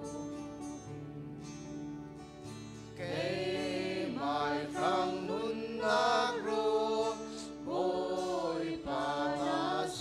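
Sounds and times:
acoustic guitar and keyboard: 0.0 - 10.0
woman singing: 3.0 - 10.0.

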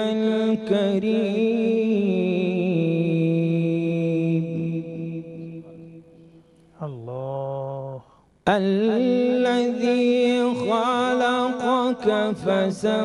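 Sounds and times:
man chanting melodically: 0.0 - 13.0.

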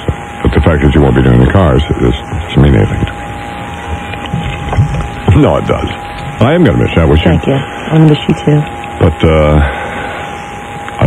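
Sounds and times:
radio static and hiss: 0.0 - 11.0.

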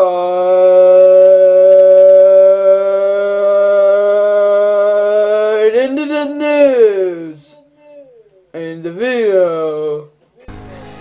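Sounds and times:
boy humming a long note: 0.0 - 8.6.

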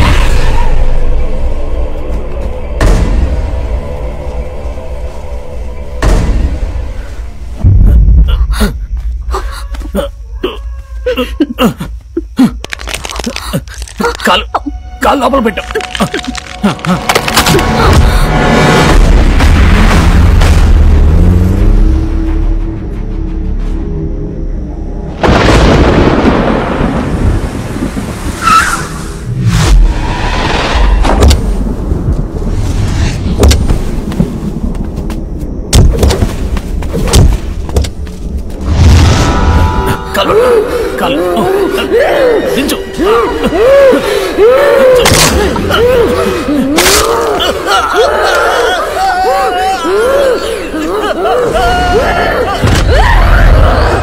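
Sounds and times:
people grunting and gasping: 7.7 - 14.7, 15.7 - 18.5, 39.8 - 54.0.

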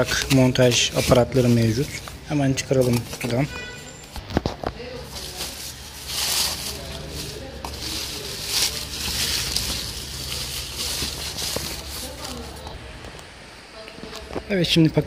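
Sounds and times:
plastic and foam crinkling: 0.0 - 12.8.

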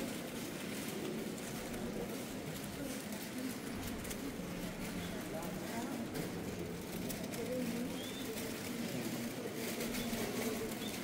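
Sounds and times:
faint shuffling: 0.0 - 11.0
murmur of crowd voices: 0.0 - 11.0.

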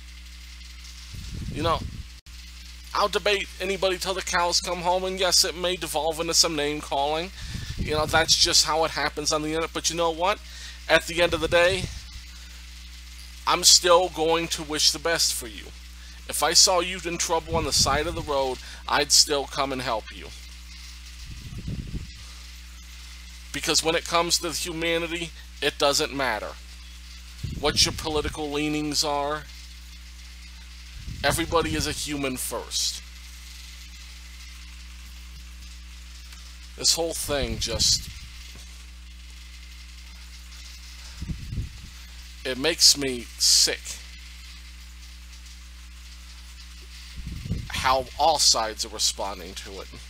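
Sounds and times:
faint hiss: 0.0 - 50.0
low electrical hum: 0.0 - 50.0.

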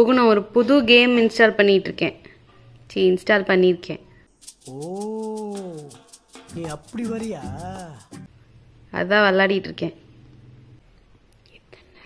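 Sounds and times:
fast high ticking: 4.3 - 8.3
drawn-out ooh cry: 4.6 - 8.3.

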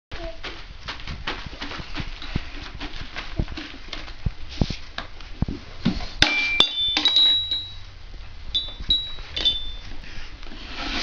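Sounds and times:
toy mallet tapping: 6.3 - 7.8, 8.6 - 9.8.

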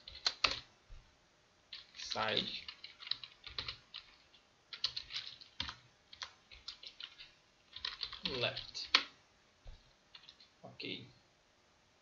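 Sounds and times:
computer keyboard typing: 0.0 - 0.7, 1.7 - 9.1, 10.1 - 10.5.

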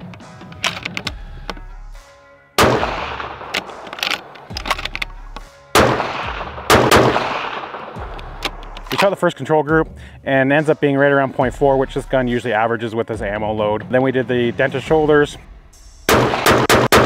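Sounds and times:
rifle bolt clicks: 0.0 - 1.7, 2.6 - 6.1, 6.7 - 9.2
rifle shots echoing: 2.6 - 9.2, 16.1 - 17.0.

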